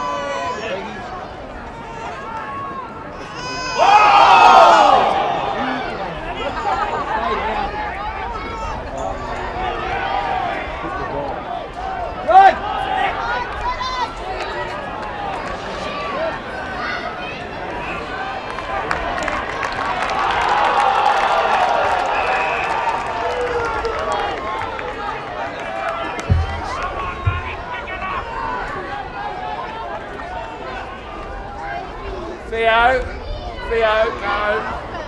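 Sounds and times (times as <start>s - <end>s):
football crowd noise: 0.0s - 35.0s
players shouting: 0.0s - 35.0s.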